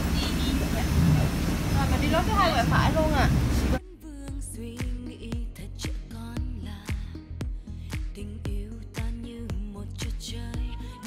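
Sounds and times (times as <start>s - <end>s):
airliner cabin rumble: 0.0s - 3.8s.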